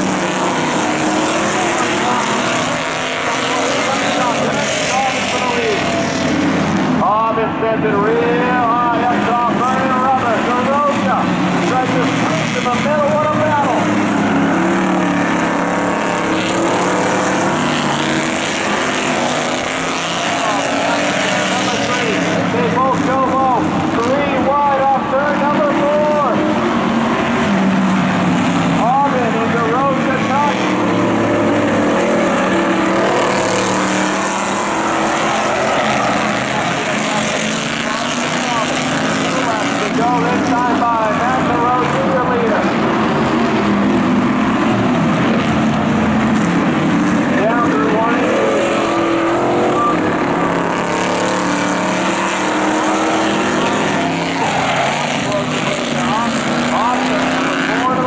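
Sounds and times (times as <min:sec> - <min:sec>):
crowd voices or announcer: 0:00.0 - 0:58.0
racing car engines: 0:00.0 - 0:58.0.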